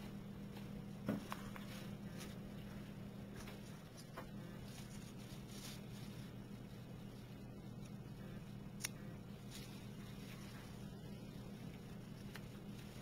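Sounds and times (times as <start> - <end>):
steady low hum: 0.0 - 13.0
faint rustling of flower on paper: 1.1 - 8.1, 9.3 - 13.0.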